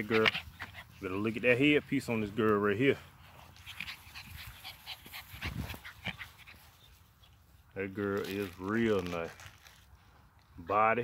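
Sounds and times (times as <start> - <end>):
puppies panting and snuffling: 0.0 - 7.7.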